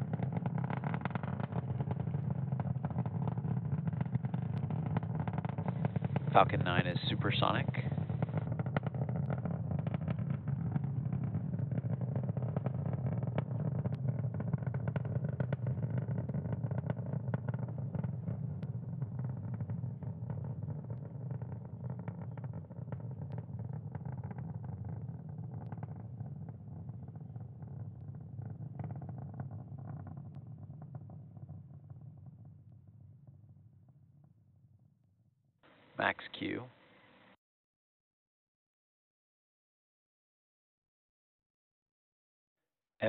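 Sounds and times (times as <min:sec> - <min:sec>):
rocket engines rumbling and crackling: 0:00.0 - 0:33.2.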